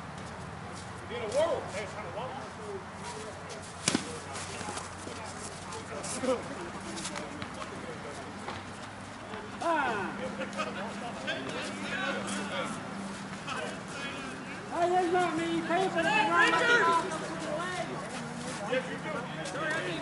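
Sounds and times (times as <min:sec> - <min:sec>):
bat hitting ball: 0:03.8 - 0:04.2
distant players shouting: 0:13.4 - 0:17.9.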